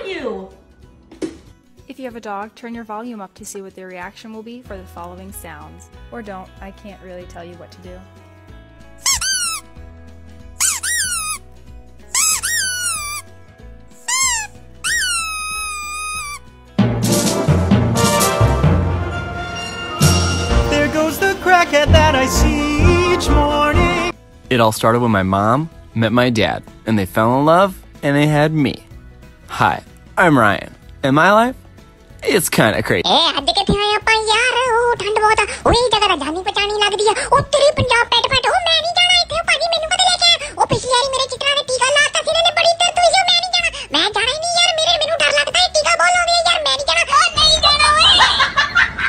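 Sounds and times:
high synthetic singing voice: 20.5 - 24.2.

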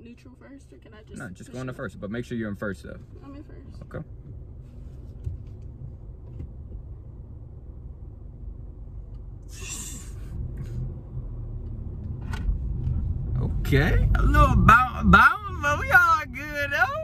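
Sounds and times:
car engine rumble: 0.0 - 17.0
road noise: 0.0 - 17.0.

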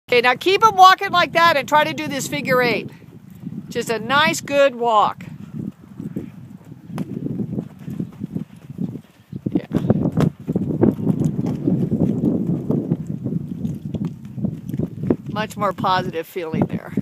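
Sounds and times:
hoofbeats on sand: 0.2 - 17.0.

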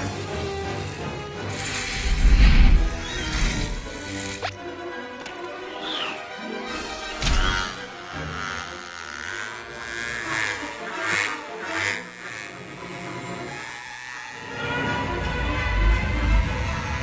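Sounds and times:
toy propeller buzzing whir: 0.0 - 4.6, 5.8 - 17.0
orchestral film score: 0.0 - 17.0
deep rumble: 1.7 - 4.0.

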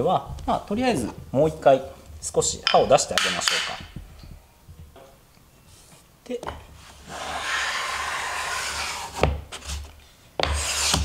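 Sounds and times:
hand plane shaving wood: 6.9 - 9.8, 10.5 - 11.0.

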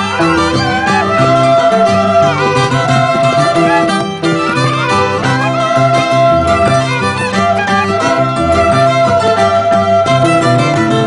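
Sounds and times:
plucked string accompaniment: 0.0 - 11.0
violin melody: 0.0 - 11.0.

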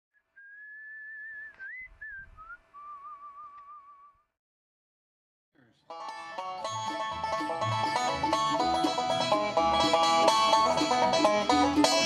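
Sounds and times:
person whistling: 0.4 - 4.2.

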